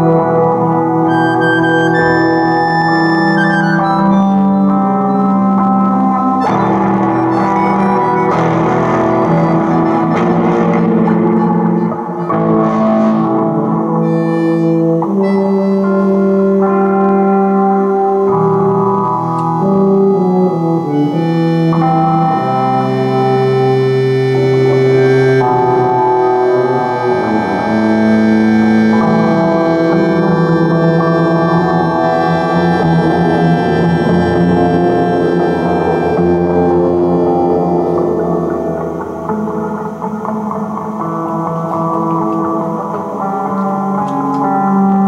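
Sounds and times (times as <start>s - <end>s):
accordion chords: 0.0s - 45.0s
low tuba notes: 0.0s - 45.0s.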